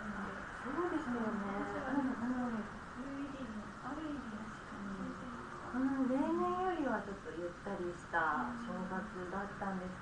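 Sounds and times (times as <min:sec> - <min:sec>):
women talking: 0:00.0 - 0:10.0.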